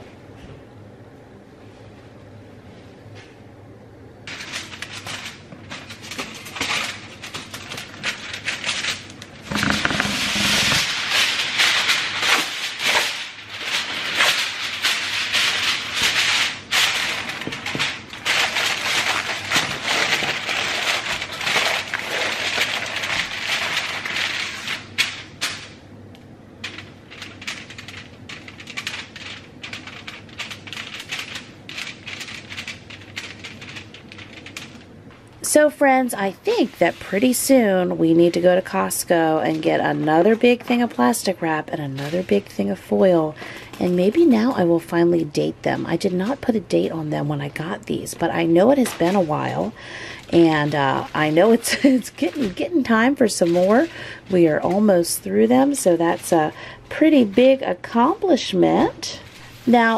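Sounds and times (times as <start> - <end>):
aluminium foil crinkling: 4.3 - 59.9.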